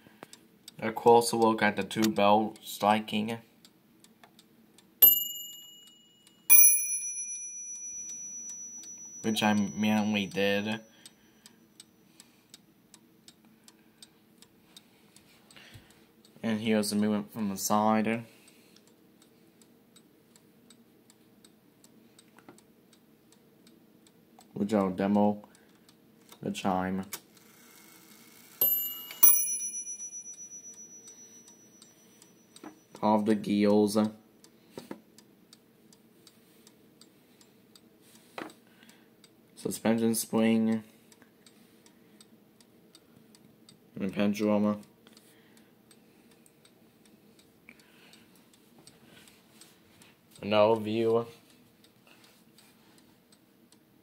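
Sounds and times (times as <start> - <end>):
faint clock tick: 0.0 - 54.0
clock bells striking: 5.0 - 10.8, 28.6 - 33.1.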